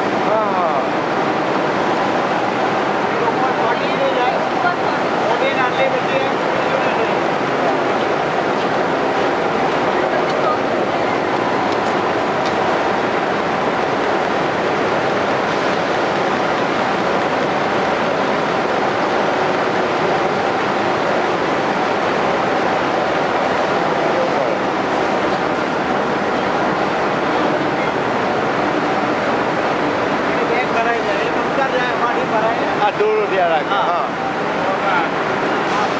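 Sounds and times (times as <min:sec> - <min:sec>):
processing machinery running: 0:00.0 - 0:35.9
voices: 0:00.0 - 0:35.9.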